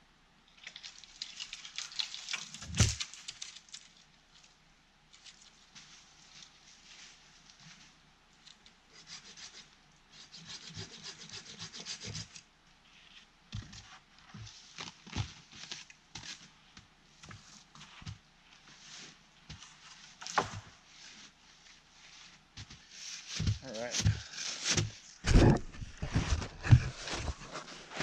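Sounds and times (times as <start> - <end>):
wood cracking sharply: 0.6 - 4.0
hand saw cutting branch: 9.0 - 12.4
knocks and scrapes of wood: 19.5 - 21.3, 22.3 - 28.0.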